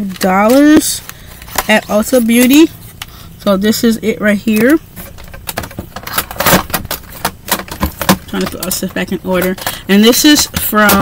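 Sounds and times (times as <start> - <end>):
plastic palettes clattering: 0.0 - 2.7, 4.5 - 11.0.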